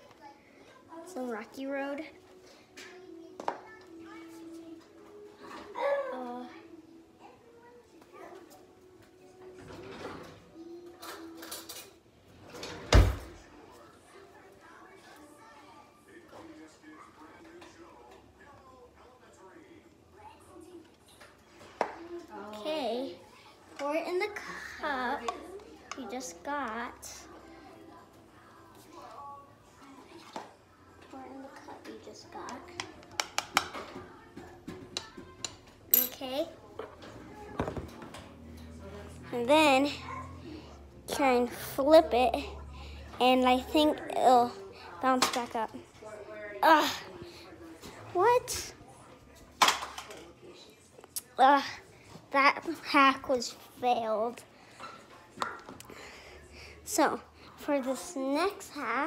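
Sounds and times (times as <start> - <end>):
child's voice: 2.8 - 8.6, 41.1 - 45.8, 48.1 - 48.7, 56.9 - 59.0.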